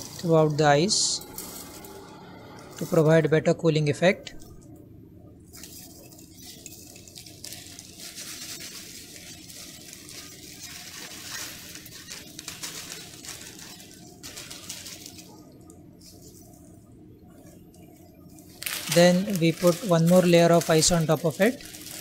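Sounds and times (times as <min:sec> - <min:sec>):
packet rustling: 0:00.0 - 0:03.2, 0:05.4 - 0:16.8, 0:17.4 - 0:22.0
salt grains scattering on ice: 0:05.6 - 0:15.3.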